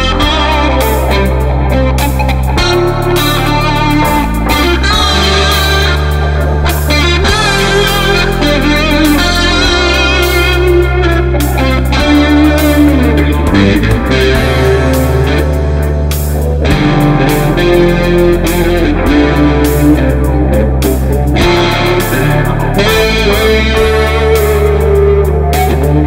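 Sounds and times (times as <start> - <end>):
drums: 0.0 - 26.0
electric guitar blues-rock lead: 0.0 - 26.0
held bass notes: 0.0 - 26.0.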